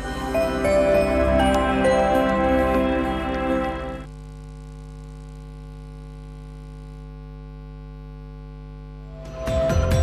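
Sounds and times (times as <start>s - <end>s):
electrical mains hum: 0.0s - 9.8s.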